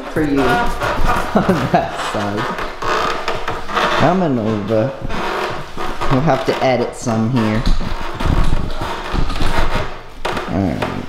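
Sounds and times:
plastic wrapping crinkling: 0.0 - 10.8
low knocks and bumps: 0.0 - 11.0.

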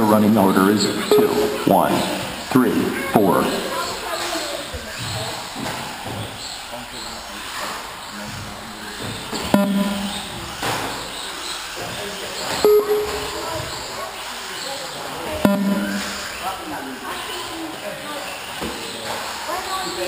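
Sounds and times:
sharp hits: 9.6 - 10.6, 15.5 - 16.4.

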